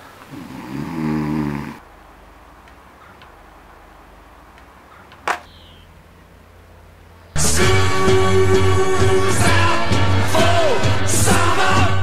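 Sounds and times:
man snoring: 0.3s - 1.8s
low hum: 1.8s - 10.1s.

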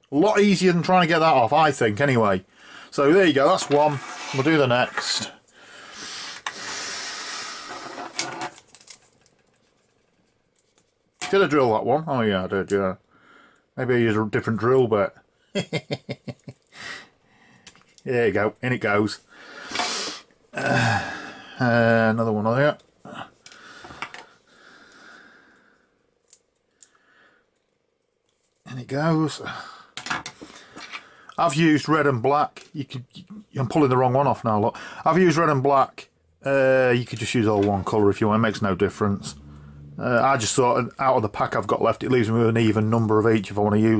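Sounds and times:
faint rubbing: 3.0s - 5.4s, 6.0s - 8.6s
rustling of small parts: 7.5s - 11.4s, 26.2s - 28.7s, 30.0s - 31.1s.

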